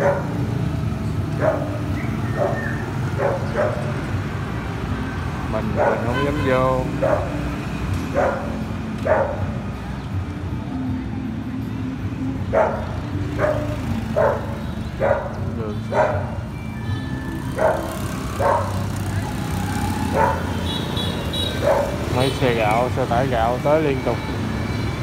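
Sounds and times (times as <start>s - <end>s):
dog barking: 0.0s - 0.4s, 1.3s - 4.1s, 5.6s - 7.4s, 8.1s - 9.5s, 12.5s - 16.5s, 17.6s - 19.0s, 20.1s - 22.2s
motorbike traffic hum: 0.0s - 25.0s.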